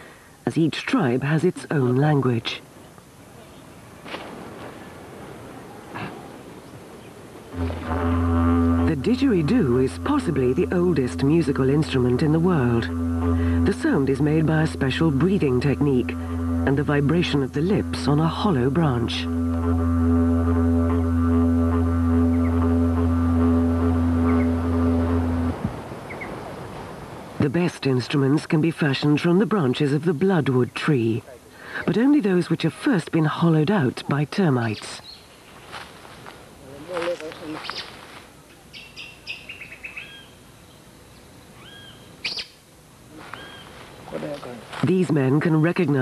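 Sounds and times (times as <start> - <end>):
didgeridoo drone: 7.5 - 25.8
whistled bird calls: 38.7 - 40.4, 41.6 - 42.6, 43.4 - 43.7.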